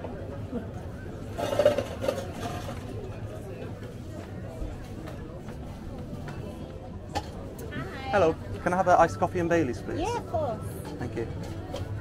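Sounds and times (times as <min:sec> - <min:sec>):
outdoor street noise: 0:00.0 - 0:12.0.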